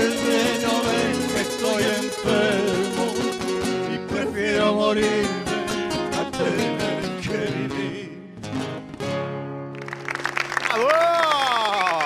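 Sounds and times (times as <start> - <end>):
acoustic guitars playing: 0.0 - 10.6.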